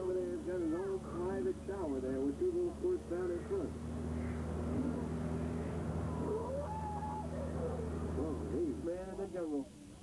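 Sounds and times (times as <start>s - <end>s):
boat motor humming: 0.0s - 9.2s
wavering high calls: 4.0s - 8.4s.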